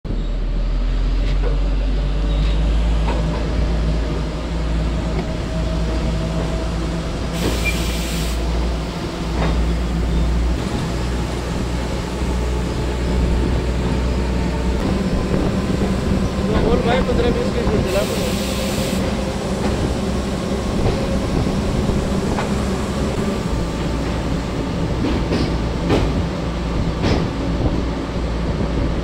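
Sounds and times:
moving train rumble: 0.1s - 29.0s.

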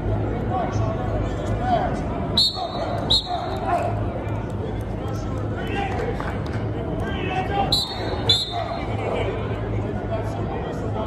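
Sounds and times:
steady low hum: 0.0s - 11.0s
whistle blast: 2.4s - 3.5s, 7.7s - 8.8s
voices calling out: 7.1s - 9.4s.

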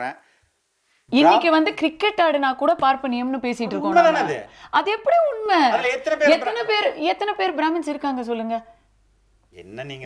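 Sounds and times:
woman talking animatedly: 1.1s - 8.6s.

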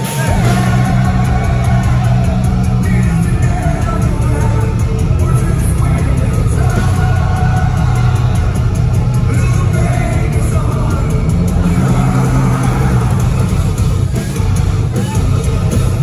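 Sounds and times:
man singing: 0.0s - 13.4s
live rock band playing: 0.0s - 16.0s.

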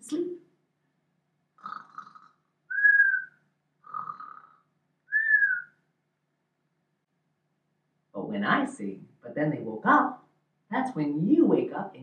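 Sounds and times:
man's cartoon snore: 1.6s - 2.4s, 3.8s - 4.6s
whistle on out-breath: 2.7s - 3.4s, 5.1s - 5.8s.

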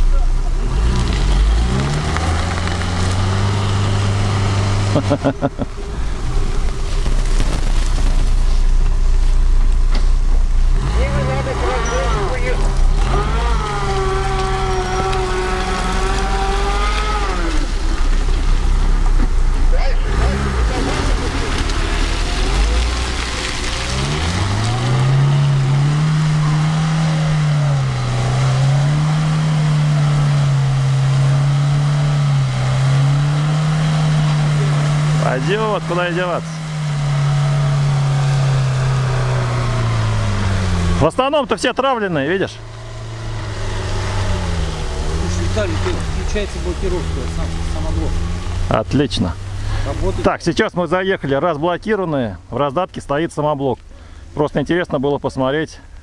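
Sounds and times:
car engine revving under load: 0.0s - 50.9s
wheels spinning in mud: 0.0s - 52.0s.

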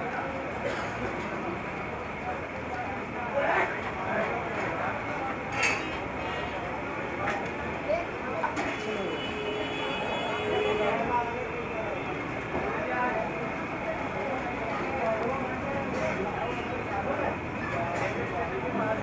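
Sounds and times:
people talking: 0.0s - 19.0s
traffic noise: 0.0s - 19.0s.

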